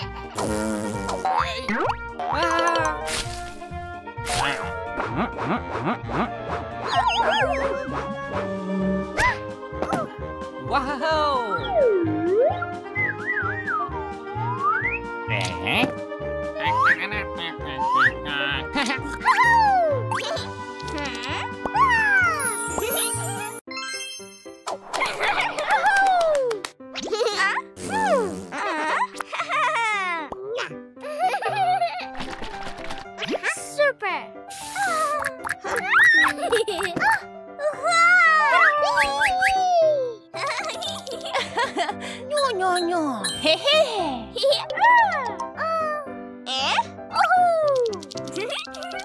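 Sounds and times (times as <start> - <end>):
upbeat children's music: 0.0 - 27.7, 28.7 - 49.0.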